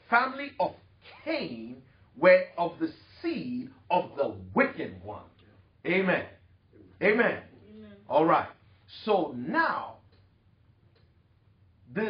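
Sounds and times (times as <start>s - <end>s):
man speaking: 0.0s - 10.1s.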